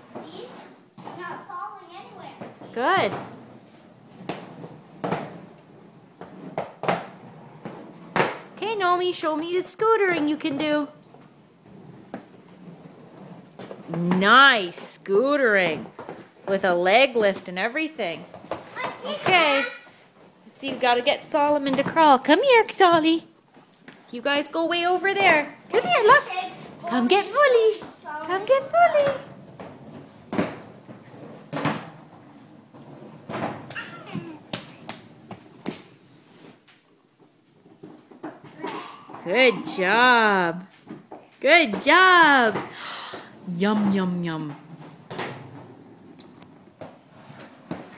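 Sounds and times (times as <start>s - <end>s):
roller skates clacking on wood floor: 0.0s - 47.9s
baby's hands slapping wooden floor: 33.7s - 35.1s.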